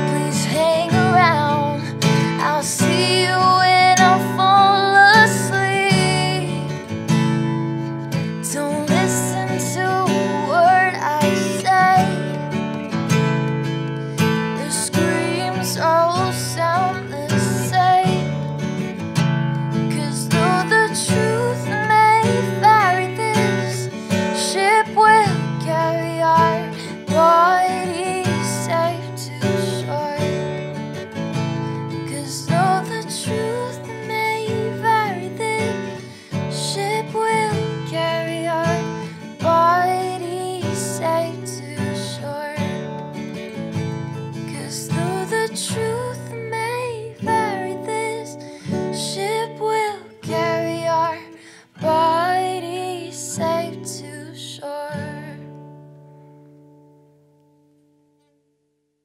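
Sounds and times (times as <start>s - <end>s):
woman singing: 0.0s - 13.0s, 14.1s - 18.7s, 19.6s - 30.8s, 31.8s - 43.1s, 44.2s - 55.9s
strummed acoustic guitar: 0.0s - 58.6s.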